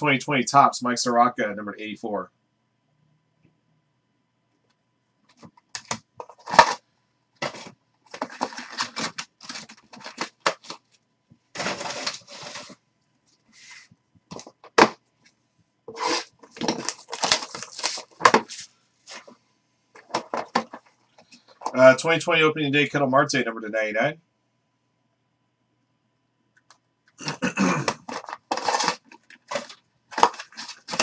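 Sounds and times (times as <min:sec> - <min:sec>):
cardboard box rustling: 0:07.4 - 0:10.9, 0:11.6 - 0:12.8, 0:15.9 - 0:19.3, 0:28.0 - 0:31.0.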